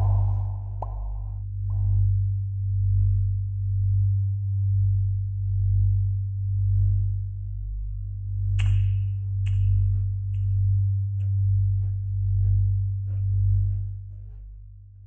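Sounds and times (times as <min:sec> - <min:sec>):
low pulsing electronic drone: 0:00.0 - 0:15.0.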